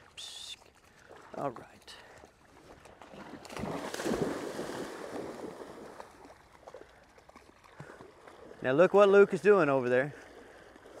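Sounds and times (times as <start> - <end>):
shallow water sloshing and splashing: 0.0 - 11.0.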